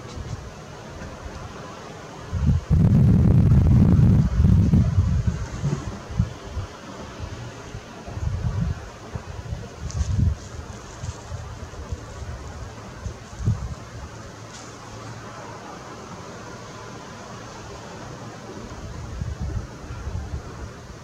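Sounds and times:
wind buffeting microphone: 2.2s - 17.0s, 17.6s - 21.0s.

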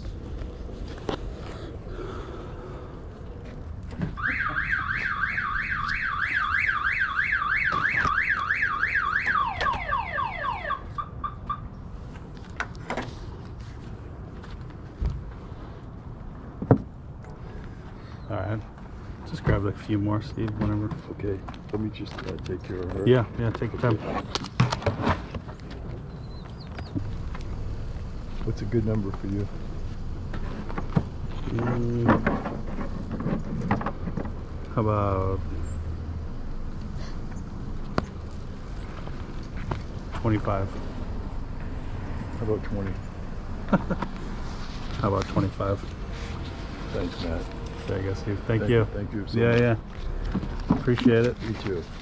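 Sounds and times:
outdoor background rumble: 0.0s - 52.0s
car alarm siren whooping: 4.2s - 11.7s
light clicks of cards and binder: 20.4s - 24.5s.

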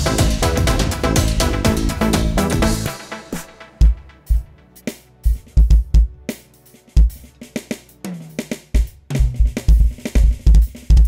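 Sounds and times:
kick drum: 0.0s - 2.9s, 3.8s - 4.5s, 5.3s - 6.2s, 8.8s - 11.0s.

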